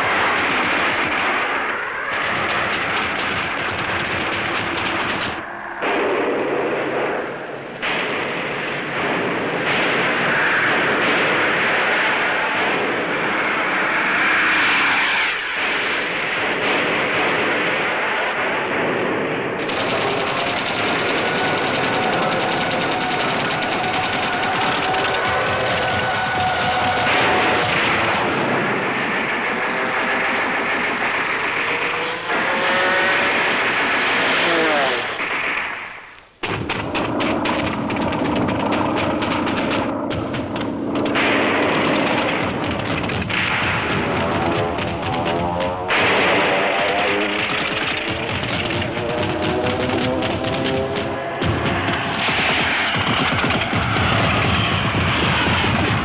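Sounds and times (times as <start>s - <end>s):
aircraft engines: 0.0s - 6.0s, 19.5s - 35.5s, 36.2s - 56.0s
rapid anti-aircraft gunfire: 0.0s - 56.0s.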